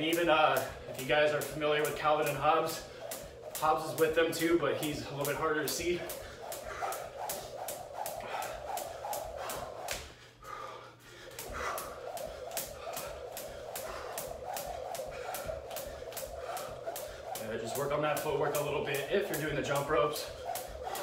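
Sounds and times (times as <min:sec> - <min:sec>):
jump rope slapping wooden floor: 0:00.0 - 0:10.2, 0:11.3 - 0:21.0.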